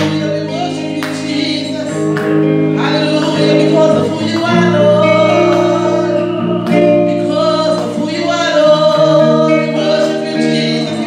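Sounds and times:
long held chords: 0.0s - 11.0s
woman singing into microphone: 2.8s - 11.0s.

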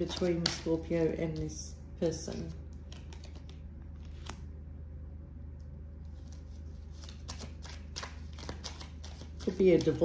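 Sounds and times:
cards being shuffled: 0.0s - 4.5s, 6.1s - 10.0s.

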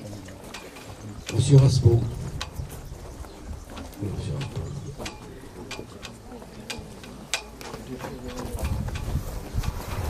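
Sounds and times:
standing crowd: 0.0s - 10.0s.

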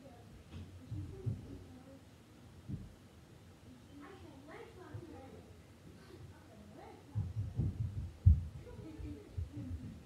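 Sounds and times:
dull low thumps: 7.2s - 10.0s.

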